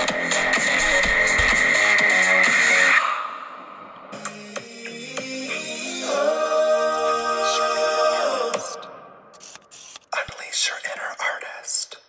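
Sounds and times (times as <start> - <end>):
person whispering: 9.4 - 12.0.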